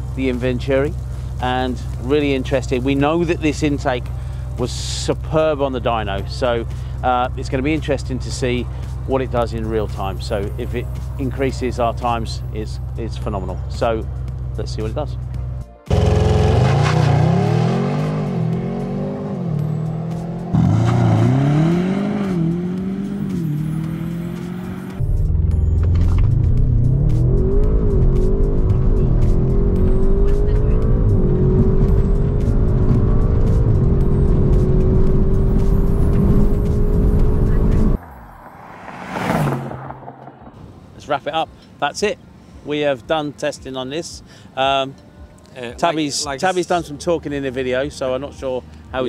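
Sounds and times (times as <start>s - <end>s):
car engine accelerating with upshifts: 15.9s - 40.7s
car passing by: 35.6s - 41.2s.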